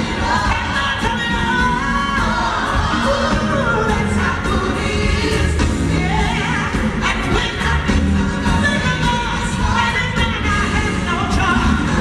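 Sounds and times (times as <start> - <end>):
band accompaniment with bass: 0.0 - 12.0
woman singing gospel: 0.0 - 12.0.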